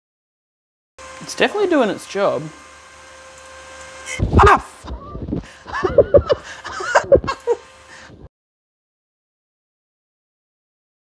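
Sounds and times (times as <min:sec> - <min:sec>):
fan humming: 0:01.0 - 0:08.3
man yelping and laughing: 0:04.2 - 0:07.6.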